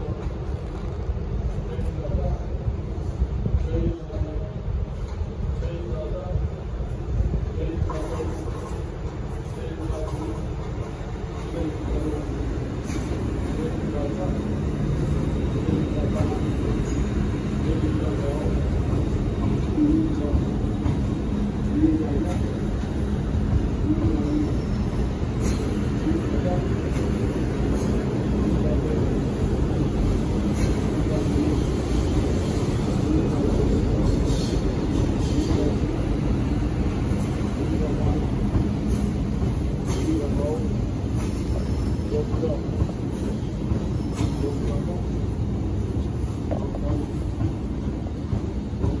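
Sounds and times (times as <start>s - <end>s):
train rumbling: 0.0s - 49.0s.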